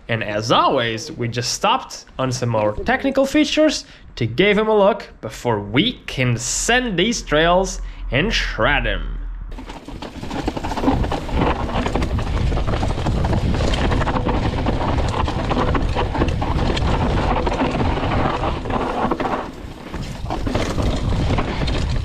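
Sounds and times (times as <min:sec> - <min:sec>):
wind rumbling on microphone: 0:05.4 - 0:22.0
bike rattling and knocking: 0:09.5 - 0:22.0
tyres rolling over dirt: 0:09.5 - 0:22.0.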